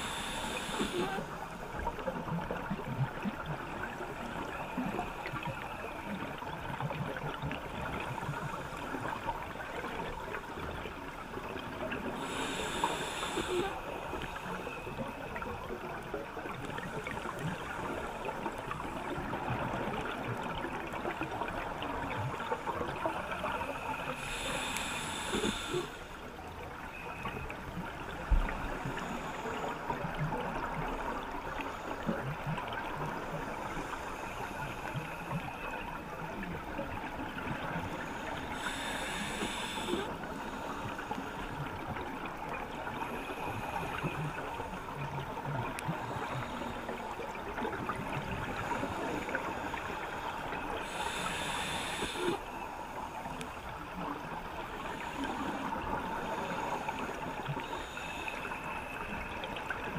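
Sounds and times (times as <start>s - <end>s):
underwater crackling hiss: 0.0s - 59.9s.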